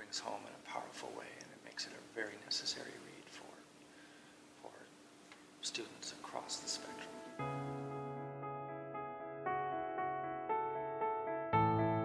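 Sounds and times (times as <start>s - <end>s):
man speaking: 0.0s - 3.7s, 4.6s - 4.9s, 5.6s - 7.4s
faint steady hum: 0.0s - 8.2s.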